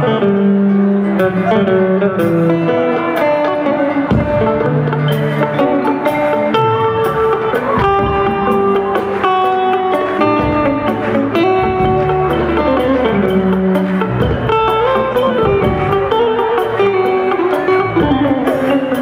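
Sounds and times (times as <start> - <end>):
electric guitar melody: 0.0 - 19.0.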